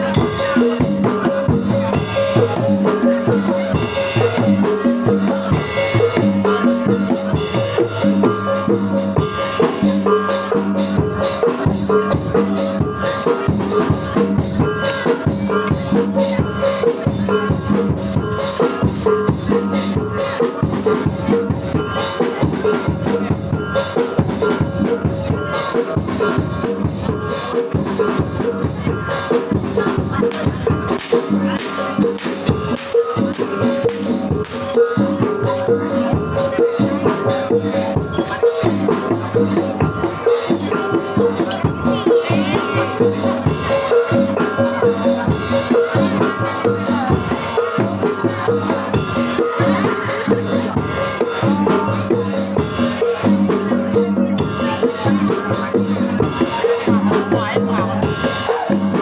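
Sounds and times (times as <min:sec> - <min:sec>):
drums beating: 0:00.0 - 0:59.0
gamelan ensemble playing: 0:00.0 - 0:59.0.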